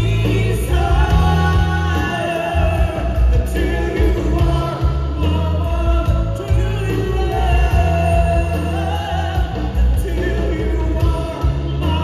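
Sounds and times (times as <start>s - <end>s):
drum kit: 0.0s - 12.0s
electric guitar: 0.0s - 12.0s
live band playing: 0.0s - 12.0s
vocalists singing: 0.0s - 12.0s.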